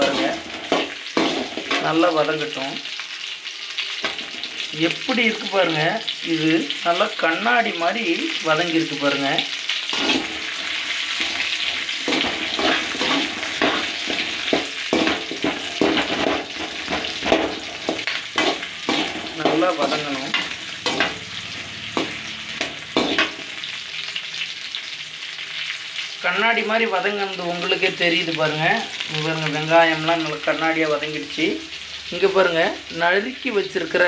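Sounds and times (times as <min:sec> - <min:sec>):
spatula scraping and knocking pan: 0:00.0 - 0:01.9, 0:09.9 - 0:23.6
food sizzling in hot oil: 0:00.0 - 0:34.0.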